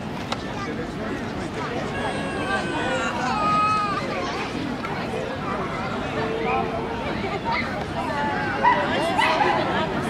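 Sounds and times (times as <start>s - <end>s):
crowd chatter: 0.0s - 10.0s
baby screaming: 1.9s - 4.1s.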